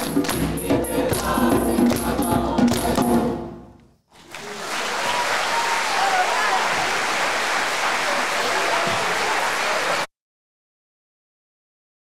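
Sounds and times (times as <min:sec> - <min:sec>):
choir singing: 0:00.0 - 0:03.6
audience applauding: 0:04.1 - 0:10.1.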